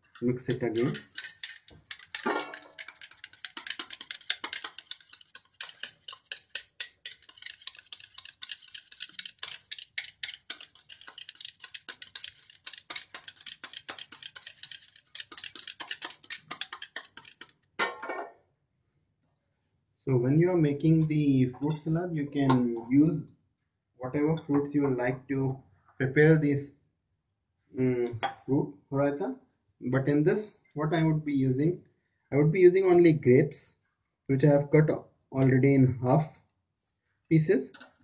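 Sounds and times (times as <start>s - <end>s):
wire whisk clicking against bowl: 0.1s - 17.5s.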